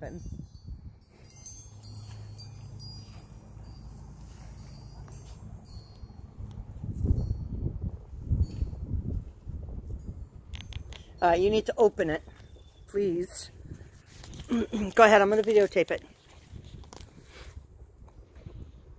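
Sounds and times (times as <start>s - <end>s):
wind buffeting microphone: 0.0s - 3.8s, 4.5s - 15.4s, 16.4s - 18.9s
wind chimes tinkling: 0.0s - 15.9s.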